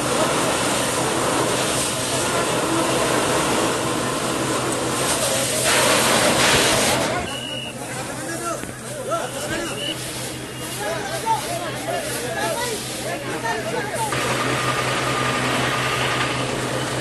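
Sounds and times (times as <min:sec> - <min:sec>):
fire hose spraying water: 0:00.0 - 0:17.0
voices: 0:00.0 - 0:17.0.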